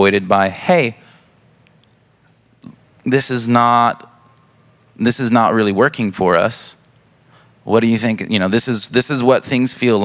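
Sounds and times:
breath into a microphone: 0:01.0 - 0:01.4, 0:07.2 - 0:07.6.

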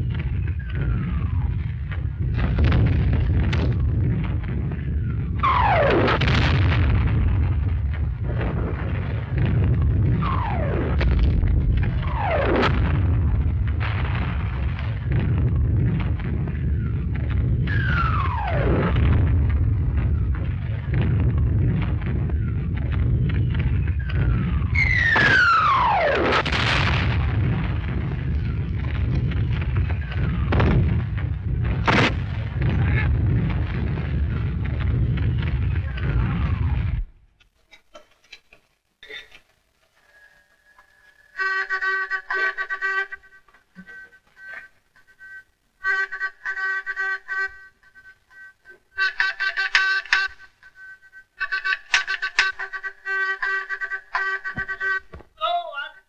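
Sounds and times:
artillery rumble: 0:00.0 - 0:37.5
sharp cracks: 0:00.0 - 0:39.6
shell whistle falling in pitch: 0:23.5 - 0:26.4, 0:41.2 - 0:55.1.

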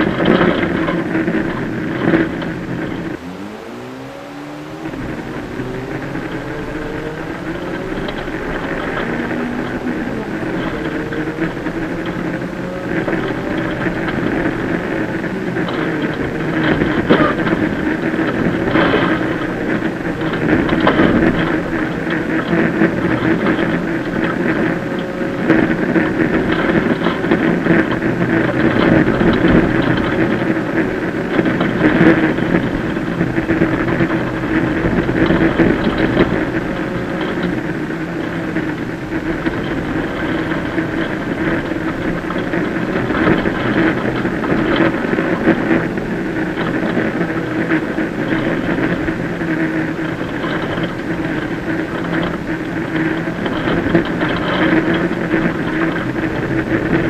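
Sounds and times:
rally car engine running hard: 0:00.0 - 0:57.0
rattles and hits: 0:00.0 - 0:57.0
tyres on gravel: 0:00.0 - 0:57.0.

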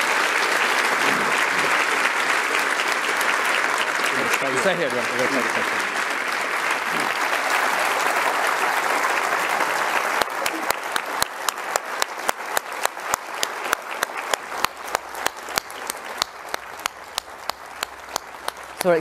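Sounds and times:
audience applauding: 0:00.0 - 0:19.0
person clapping close: 0:10.2 - 0:19.0.

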